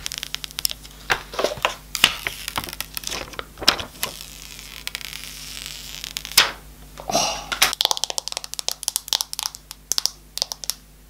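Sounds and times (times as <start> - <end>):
plastic film peeling crackles: 0.0 - 6.4, 7.7 - 10.8.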